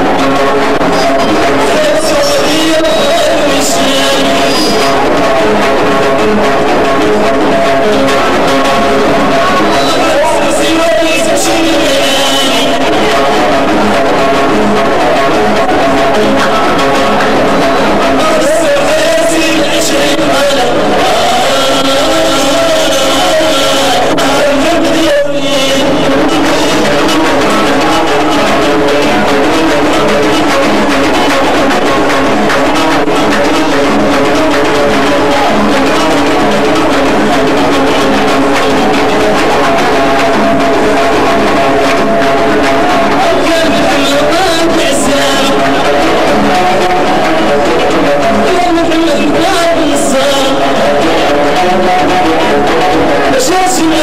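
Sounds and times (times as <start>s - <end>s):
plucked string instrument: 0.0s - 54.0s.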